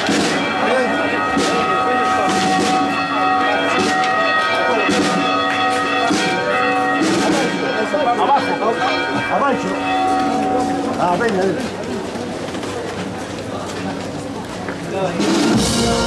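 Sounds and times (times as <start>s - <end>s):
church bells ringing: 0.0s - 12.5s.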